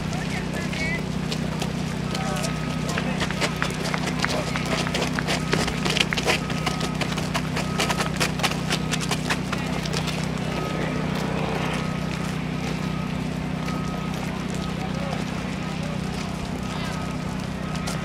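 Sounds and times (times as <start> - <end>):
footsteps on pavement: 0.0 - 18.0
steady low hum: 0.0 - 18.0
voices talking: 0.0 - 18.0.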